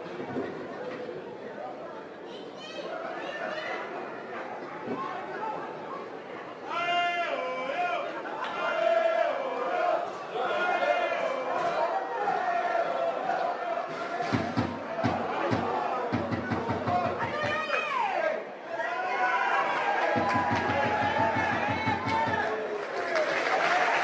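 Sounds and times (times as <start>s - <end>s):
crowd chatter: 0.0s - 24.0s
voices shouting: 6.6s - 22.7s.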